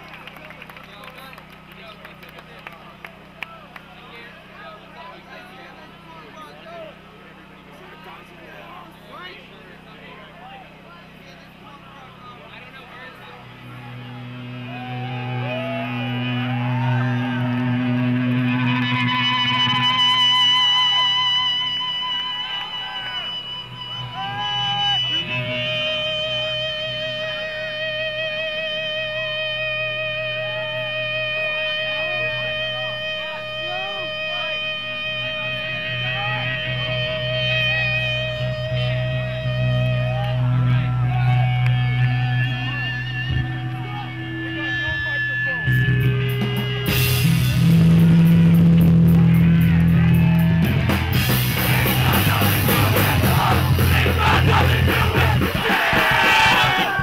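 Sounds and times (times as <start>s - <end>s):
crowd chatter: 0.0s - 18.7s, 48.3s - 57.0s
low amp hum: 0.0s - 57.0s
electric guitar feedback: 10.7s - 57.0s
punk band playing loudly: 13.4s - 27.6s, 44.2s - 57.0s.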